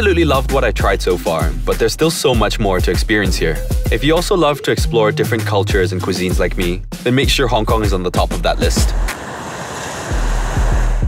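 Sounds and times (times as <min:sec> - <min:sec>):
bass and kick-drum music: 0:00.0 - 0:09.1, 0:10.1 - 0:11.0
wind rushing: 0:08.6 - 0:11.0
waves on open water: 0:08.9 - 0:11.0.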